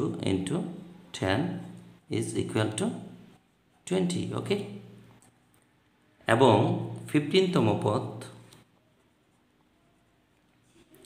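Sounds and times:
person speaking: 0:00.0 - 0:05.2, 0:06.2 - 0:08.7.

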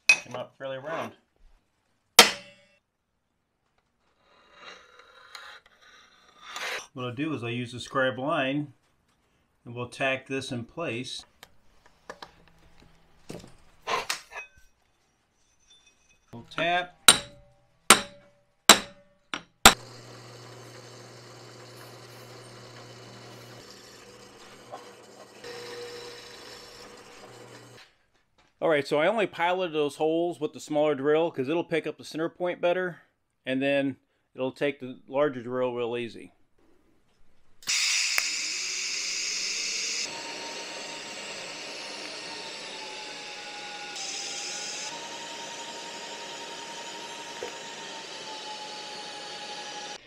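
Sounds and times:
drill press boring metal: 0:19.6 - 0:27.8, 0:37.6 - 0:50.0.

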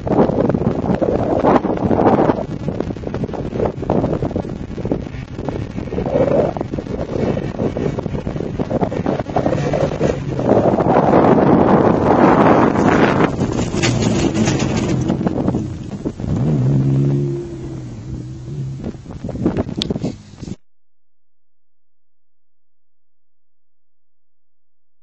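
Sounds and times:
wind buffeting microphone: 0:00.0 - 0:20.6
car engine passing: 0:09.0 - 0:19.1.

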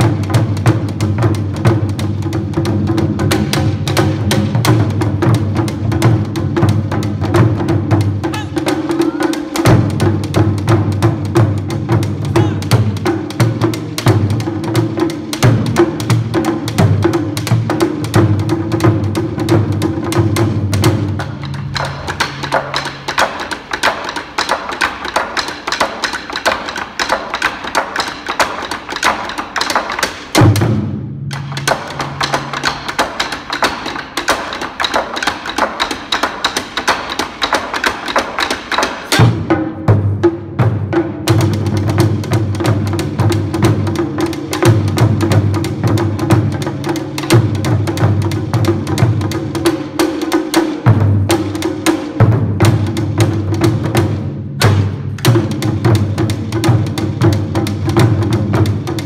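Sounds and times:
loud drum hit: 0:00.0 - 0:23.4, 0:30.3 - 0:33.2, 0:39.0 - 0:59.0
taiko drums played with sticks: 0:00.0 - 0:59.0.

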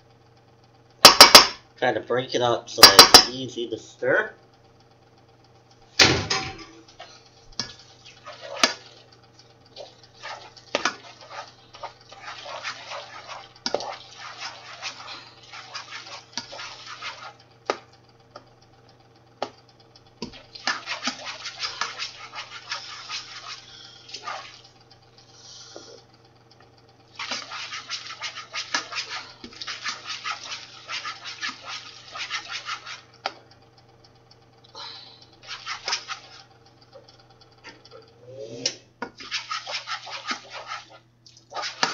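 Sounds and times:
spoon knocking against pot: 0:02.8 - 0:03.3
spoon stirring macaroni in saucepan: 0:07.6 - 0:09.1, 0:09.8 - 0:17.8, 0:20.3 - 0:23.6, 0:27.2 - 0:33.1, 0:39.1 - 0:41.9.

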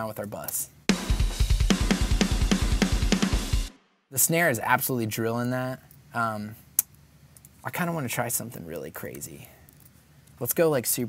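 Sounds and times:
double-kick bass drum: 0:00.9 - 0:03.7
cymbals: 0:00.9 - 0:03.8.

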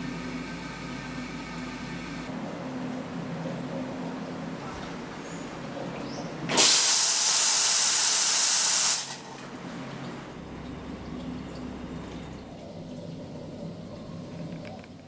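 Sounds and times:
steam wand hissing: 0:06.6 - 0:09.2.

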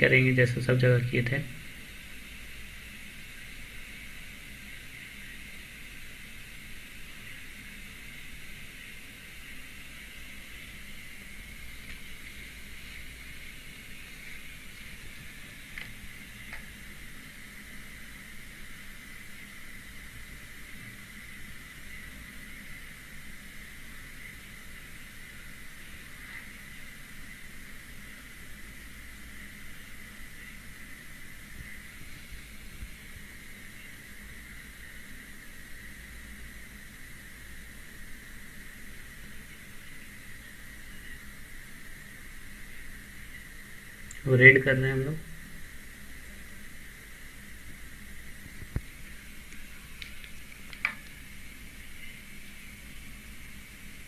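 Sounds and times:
background hiss: 0:00.0 - 0:54.0
faint high whine: 0:00.0 - 0:54.0.

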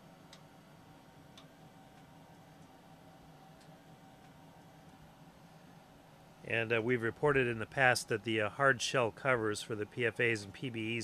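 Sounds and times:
faint ventilation hum: 0:00.0 - 0:11.0.

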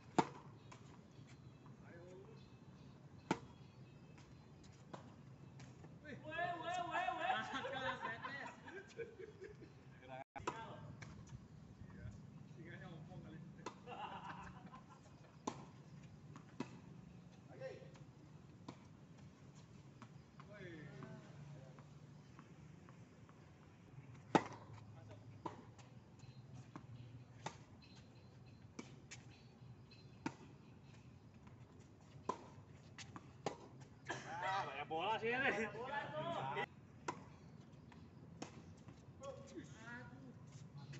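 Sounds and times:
tennis balls struck and bouncing: 0:00.0 - 0:05.9, 0:10.4 - 0:11.4, 0:13.6 - 0:19.0, 0:20.0 - 0:34.2, 0:36.3 - 0:39.1.

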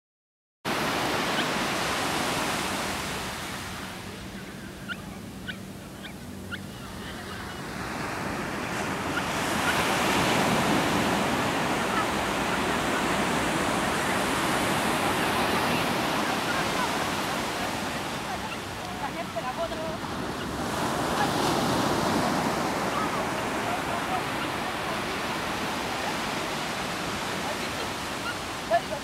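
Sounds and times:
wind: 0:00.6 - 0:29.0
ocean surf washing onto beach: 0:00.7 - 0:04.8, 0:05.7 - 0:29.0.

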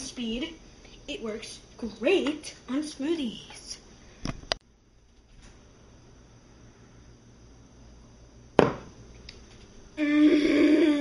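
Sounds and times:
sudden thump: 0:08.6 - 0:08.9
person holding a long vocal note: 0:10.0 - 0:11.0.

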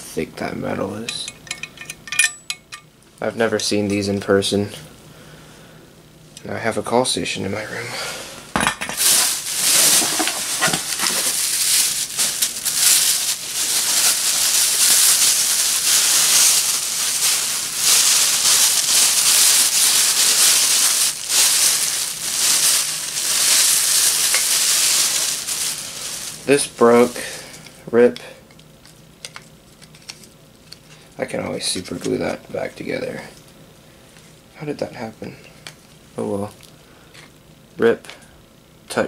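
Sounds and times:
plastic bags and paper rustling: 0:08.8 - 0:27.8.

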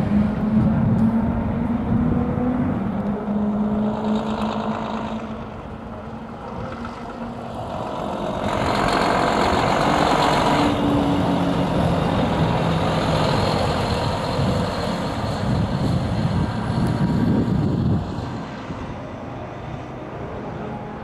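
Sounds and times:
truck driving past: 0:00.0 - 0:21.0.

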